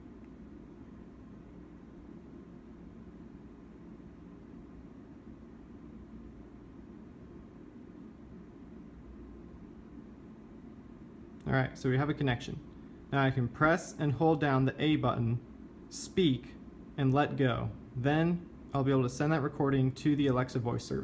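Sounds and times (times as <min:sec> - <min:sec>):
faint even hum: 0:00.0 - 0:21.0.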